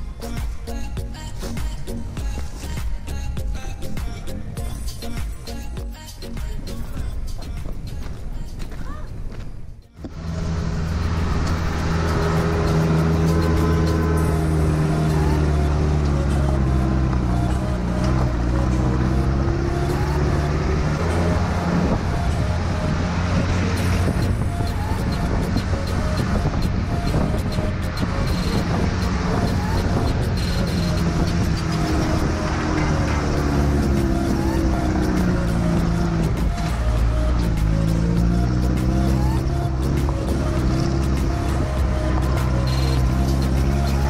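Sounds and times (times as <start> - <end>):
off-road engine under load: 10.0 - 44.0.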